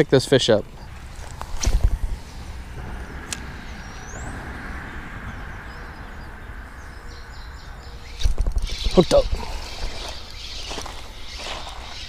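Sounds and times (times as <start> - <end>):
wind rumbling on microphone: 0.0 - 12.0
bird chirps: 0.6 - 12.0.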